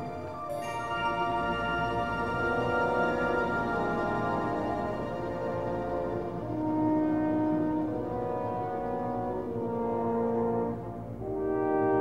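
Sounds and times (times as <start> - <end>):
orchestra playing sustained chords: 0.0 - 12.0.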